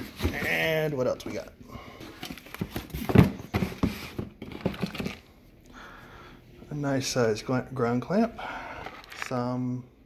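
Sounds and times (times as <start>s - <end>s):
cardboard boxes rustling and scraping: 0.0s - 5.2s.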